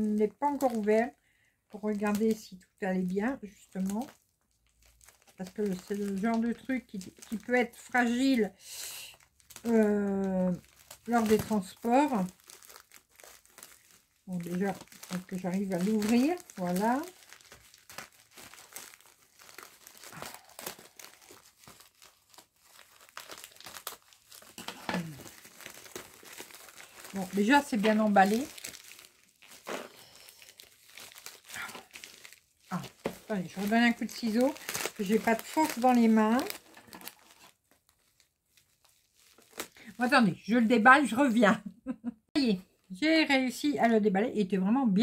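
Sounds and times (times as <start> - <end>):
packaging crinkling: 0.4 - 1.1, 1.8 - 40.1.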